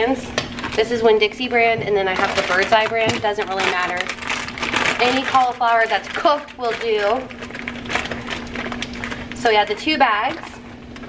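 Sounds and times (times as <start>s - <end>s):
food crackling in hot pan: 3.6s - 9.5s.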